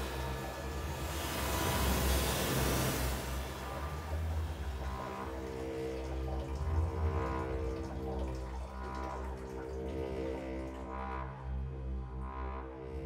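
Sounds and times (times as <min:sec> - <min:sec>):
soft swells: 0:00.0 - 0:05.9
deep bass rumble: 0:00.0 - 0:13.0
low droning tones: 0:00.0 - 0:13.0.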